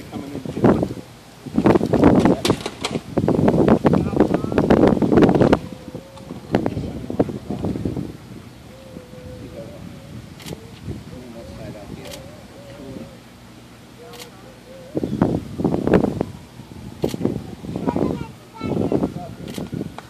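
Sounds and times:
indistinct talking: 3.9s - 19.7s.

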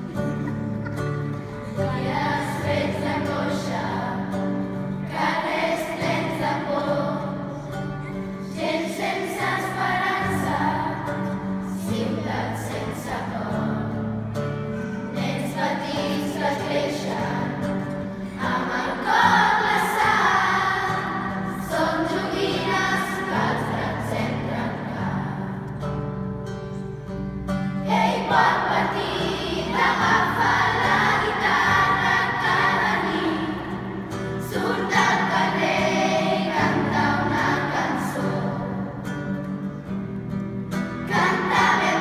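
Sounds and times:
children's choir singing: 0.0s - 25.9s, 27.8s - 39.6s, 40.8s - 42.0s.

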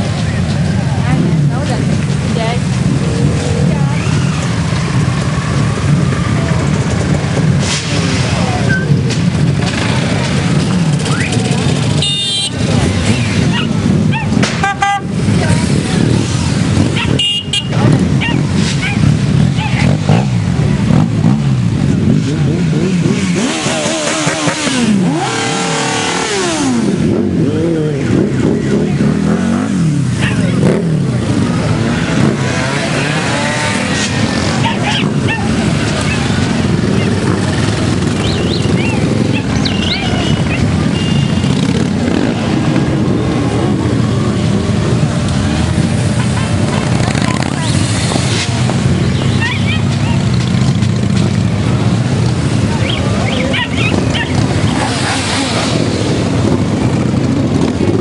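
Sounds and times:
motorcycles riding past revving: 0.0s - 58.0s.

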